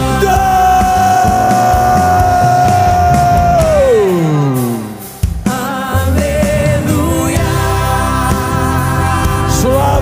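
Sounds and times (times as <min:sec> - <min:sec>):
worship band with drums: 0:00.0 - 0:10.0.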